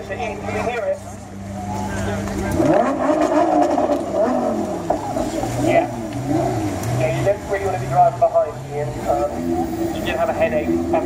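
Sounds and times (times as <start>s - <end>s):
car engine idling and revving: 0.0s - 11.0s.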